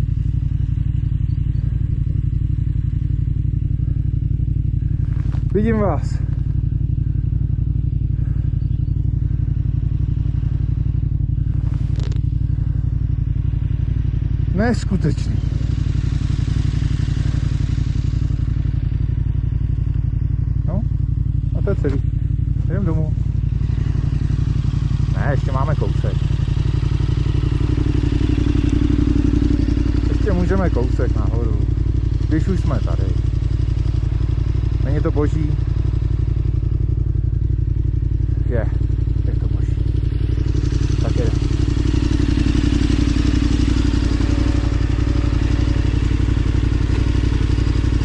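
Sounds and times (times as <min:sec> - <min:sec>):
motorcycle engine idling: 0:00.0 - 0:48.0.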